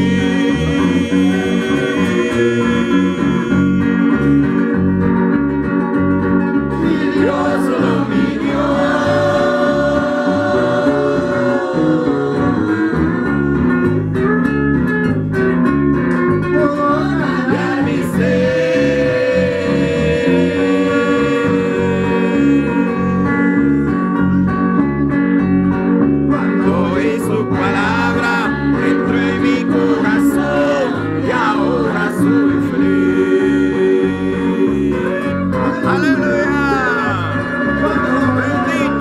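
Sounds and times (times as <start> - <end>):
man and woman singing a hymn: 0.0 - 4.6, 6.7 - 13.6, 16.6 - 24.0, 26.3 - 39.0
electric bass: 0.0 - 39.0
guitar accompaniment: 0.0 - 39.0.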